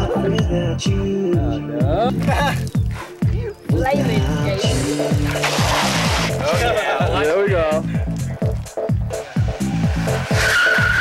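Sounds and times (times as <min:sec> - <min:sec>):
bass-heavy music beat: 0:00.0 - 0:11.0
tyres skidding on asphalt: 0:04.6 - 0:07.0, 0:08.2 - 0:11.0.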